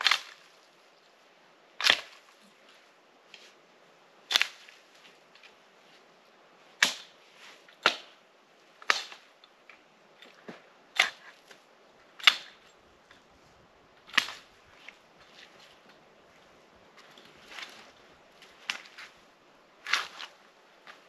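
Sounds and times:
axe chopping wood: 0:00.0 - 0:00.4, 0:01.8 - 0:02.2, 0:06.8 - 0:07.1, 0:07.8 - 0:08.2, 0:08.8 - 0:09.2, 0:10.5 - 0:11.2, 0:12.2 - 0:12.6, 0:14.1 - 0:14.5.

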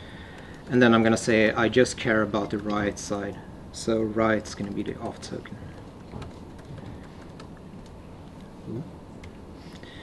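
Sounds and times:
low room hum: 0:00.0 - 0:10.0
laptop keyboard clicking: 0:04.6 - 0:08.0.

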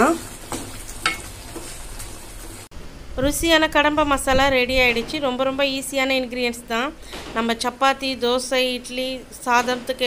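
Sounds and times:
gravy sizzling in a pan: 0:00.0 - 0:02.7
wooden spatula stirring in a pan: 0:00.0 - 0:02.7.

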